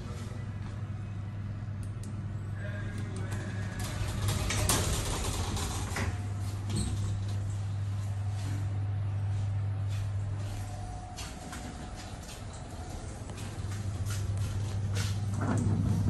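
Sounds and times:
lift car low hum: 0:00.0 - 0:16.0
lift doors sliding shut: 0:03.2 - 0:07.5, 0:15.0 - 0:16.0.

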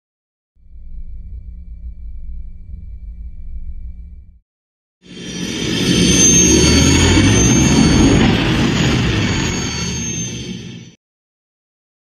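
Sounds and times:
spaceship engine rumble with whine: 0:00.6 - 0:04.4, 0:05.1 - 0:11.0.

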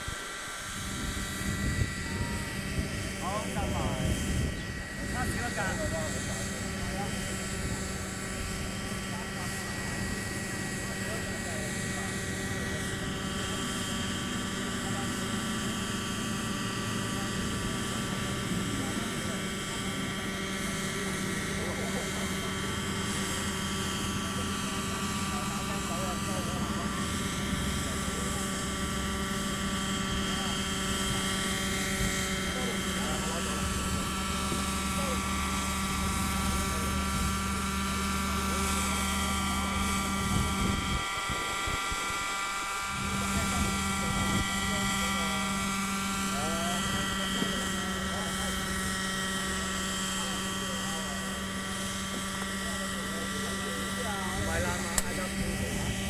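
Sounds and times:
model helicopter engine whine: 0:00.0 - 0:56.0.

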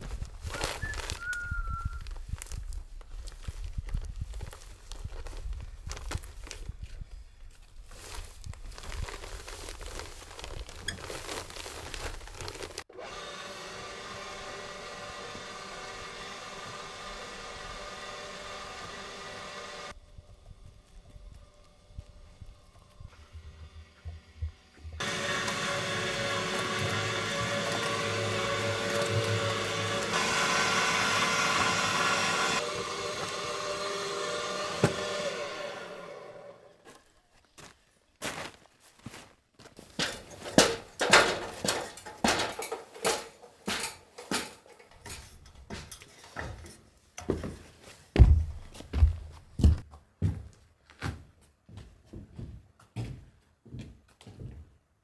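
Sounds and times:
electric cement mixer motor hum: 0:12.9 - 0:36.8.

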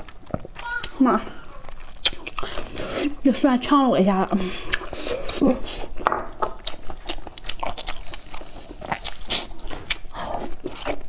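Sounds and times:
mouth chewing wetly: 0:00.0 - 0:03.3, 0:04.4 - 0:11.0.

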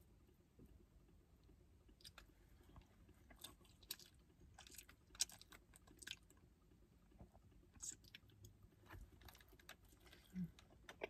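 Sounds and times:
faint chewing: 0:01.4 - 0:06.5, 0:07.2 - 0:11.0.

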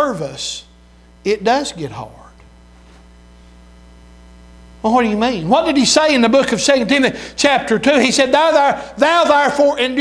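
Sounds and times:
man speaking: 0:00.0 - 0:02.4, 0:04.8 - 0:10.0
low mains hum: 0:00.0 - 0:10.0.

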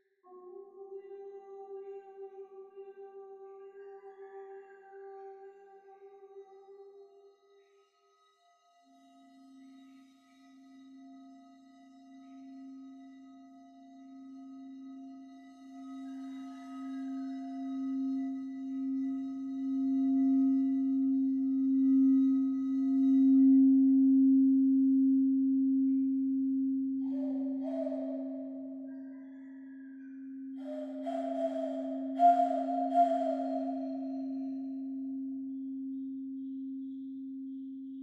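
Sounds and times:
crystal singing bowl humming: 0:09.0 - 0:38.0
breathy tone blown through hands: 0:27.1 - 0:35.3.

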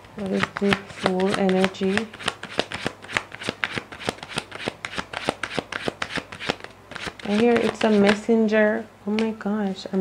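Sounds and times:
cards being shuffled: 0:00.0 - 0:08.3.

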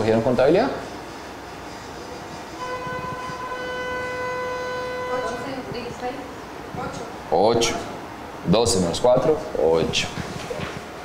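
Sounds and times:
steady tone: 0:01.1 - 0:06.7.

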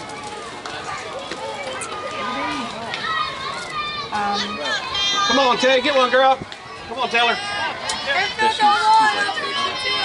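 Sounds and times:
voices chattering and calling out: 0:00.0 - 0:10.0.

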